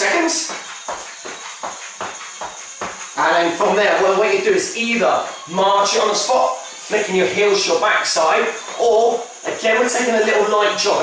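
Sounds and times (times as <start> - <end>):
feet thudding on wood floor: 0.4 - 3.2.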